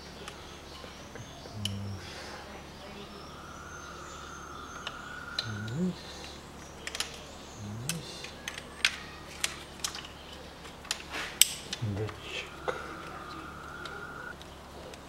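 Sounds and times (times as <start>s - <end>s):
short low vocal sound: 1.1s - 6.5s, 7.4s - 8.4s, 11.7s - 14.3s
small metal parts clicking: 8.2s - 11.8s.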